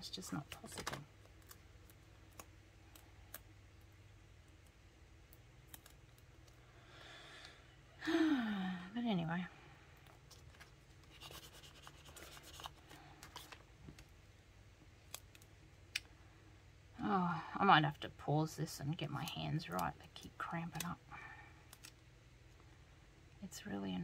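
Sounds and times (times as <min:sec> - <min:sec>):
paper and stickers rustling: 0:00.0 - 0:03.0, 0:10.1 - 0:14.1
woman groaning: 0:08.0 - 0:09.0.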